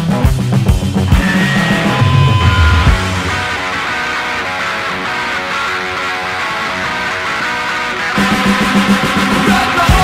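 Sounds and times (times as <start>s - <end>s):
electric guitar picking quick notes: 1.1s - 7.4s.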